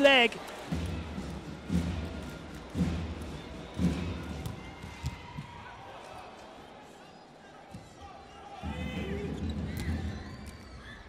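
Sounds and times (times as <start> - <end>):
indoor arena crowd noise: 0.0 - 11.0.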